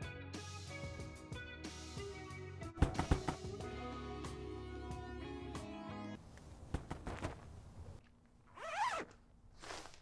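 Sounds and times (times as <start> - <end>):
tent zipper being pulled: 8.5 - 10.0.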